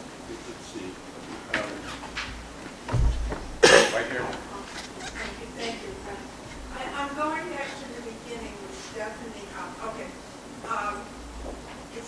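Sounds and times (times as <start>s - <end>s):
low thump: 2.9s - 3.6s
person coughing: 3.6s - 4.1s.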